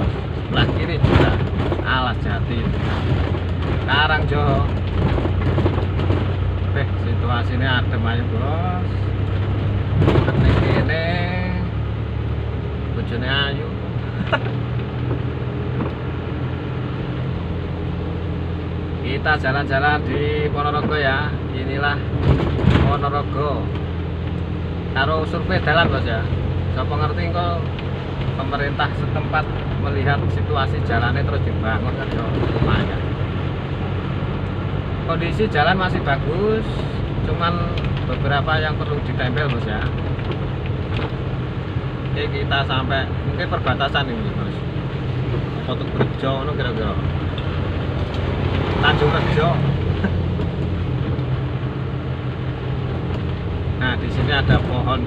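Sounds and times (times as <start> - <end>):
car engine humming: 0.0 - 55.0
tyres on wet asphalt: 0.0 - 55.0.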